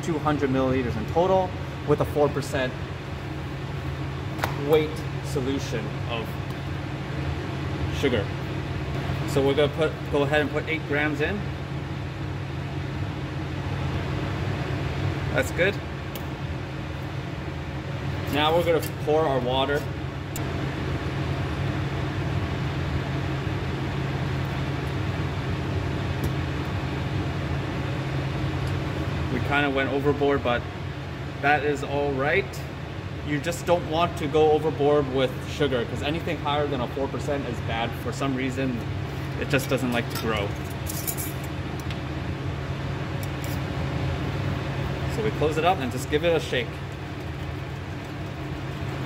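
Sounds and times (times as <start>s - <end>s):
steady low hum: 0.0s - 49.0s.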